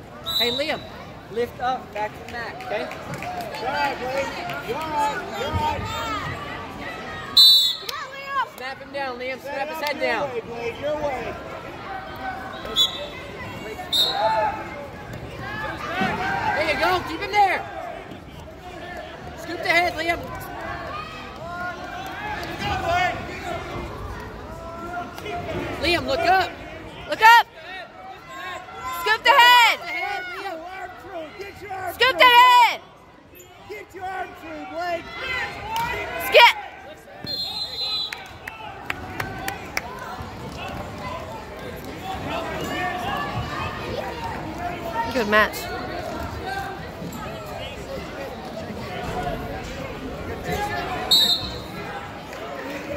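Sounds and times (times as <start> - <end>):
referee's whistle: 0.2 - 1.0, 7.4 - 8.0, 12.5 - 14.3, 37.2 - 38.3, 51.1 - 51.8
people shouting and calling out: 0.3 - 52.9
people shouting: 28.1 - 32.8.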